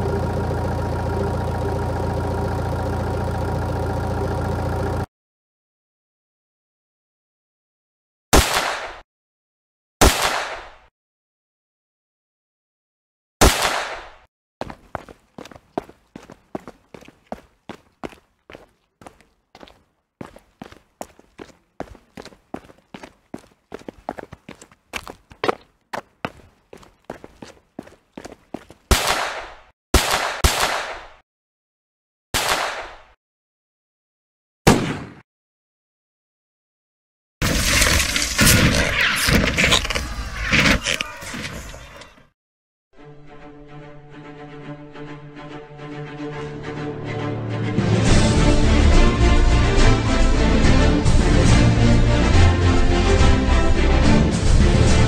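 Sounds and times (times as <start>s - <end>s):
loud single gunshots: 8.3s - 9.0s, 10.0s - 10.8s, 13.4s - 14.2s, 28.9s - 31.2s, 32.4s - 33.1s, 34.6s - 35.2s.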